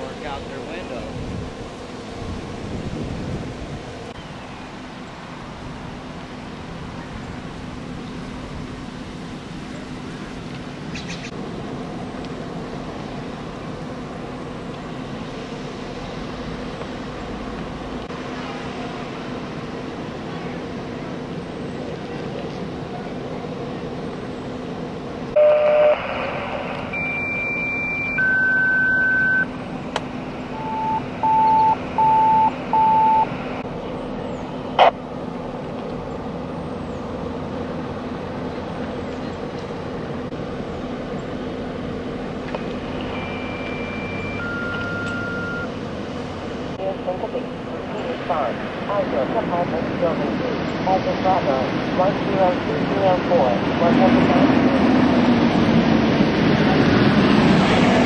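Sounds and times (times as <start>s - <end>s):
fire engines humming: 0.0s - 58.0s
radio burst: 25.4s - 29.5s, 46.8s - 54.6s
short beeps: 25.4s - 29.5s, 30.5s - 33.4s, 43.0s - 45.7s
paging tones: 26.9s - 29.5s, 30.5s - 33.3s, 43.1s - 45.7s.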